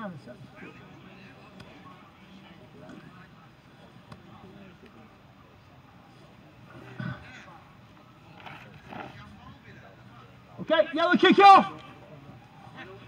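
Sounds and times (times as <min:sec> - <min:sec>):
distant players calling out: 0:08.9 - 0:13.0.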